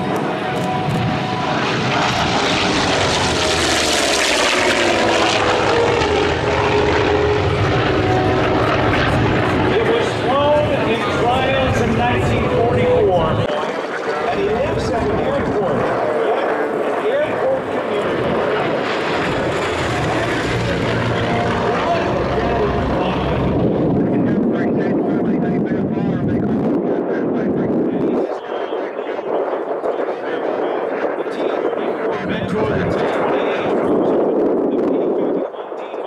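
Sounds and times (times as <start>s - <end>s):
radial aircraft engine flyby: 0.0s - 36.0s.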